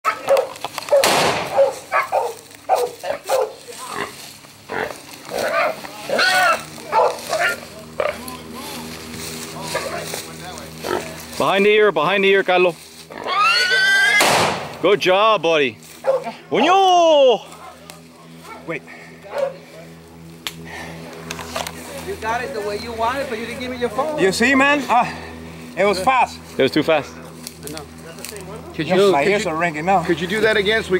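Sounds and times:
dog barking faintly: 0.0s - 3.7s, 6.9s - 7.6s, 16.0s - 16.4s, 19.3s - 19.6s
wild boar squealing and grunting: 0.1s - 8.3s, 13.1s - 14.4s.

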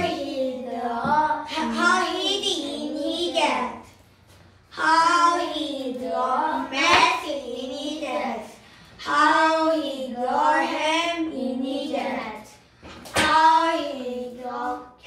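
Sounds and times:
children's sing-song voices: 0.0s - 4.0s, 4.7s - 15.0s.

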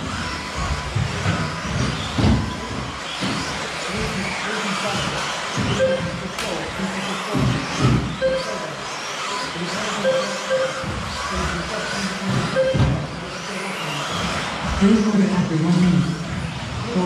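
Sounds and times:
rc car motors whining: 0.0s - 17.0s
short beeps: 5.8s - 6.2s, 8.2s - 8.6s, 10.0s - 10.9s, 12.5s - 13.1s.

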